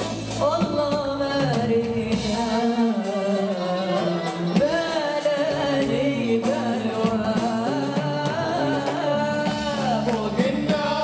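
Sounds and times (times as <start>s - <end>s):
band accompanying: 0.0s - 11.0s
woman singing: 0.0s - 11.0s.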